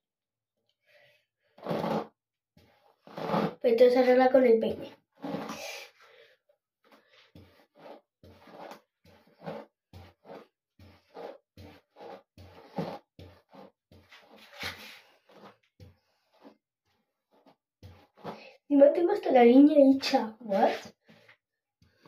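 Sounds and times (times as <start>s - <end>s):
comb strokes through wet hair: 5.2s - 5.8s, 7.3s - 15.6s.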